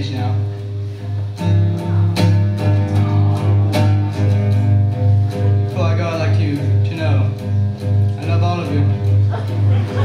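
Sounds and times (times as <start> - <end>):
classical guitar fingerpicked: 0.0 - 10.0.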